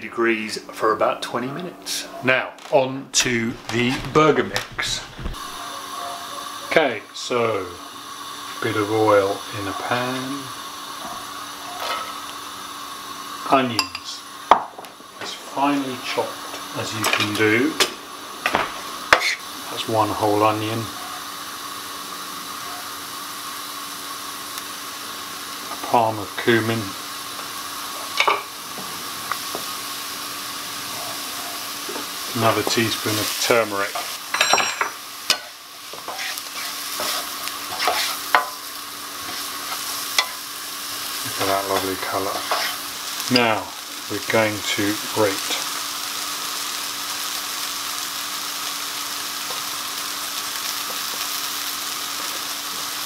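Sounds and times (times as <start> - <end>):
onions sizzling in hot oil: 3.3 - 53.0.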